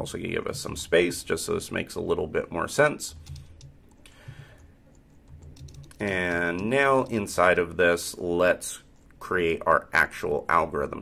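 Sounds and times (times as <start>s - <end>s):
keyboard keystrokes: 3.1s - 7.3s.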